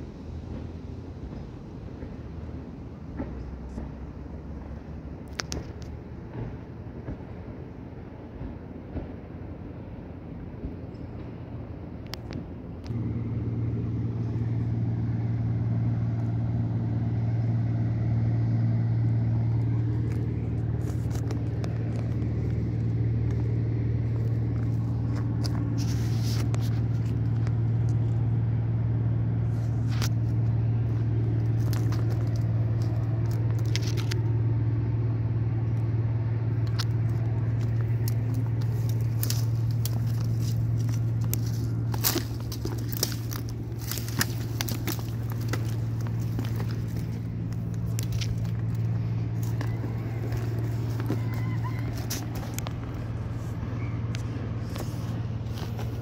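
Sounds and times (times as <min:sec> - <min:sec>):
low mechanical hum: 0:00.0 - 0:56.0
twigs crackling underfoot: 0:12.1 - 0:56.0.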